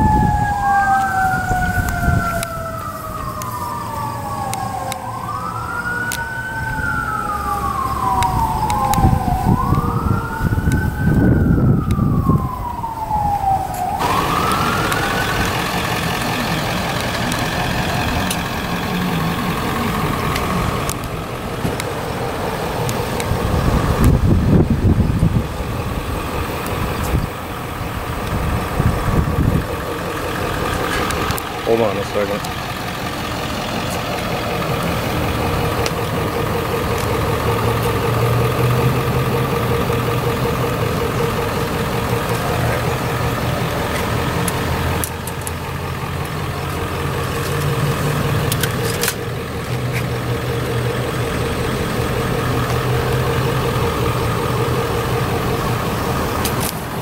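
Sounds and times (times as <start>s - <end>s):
low outdoor rumbles: 0.0s - 57.0s
siren wailing: 0.0s - 57.0s.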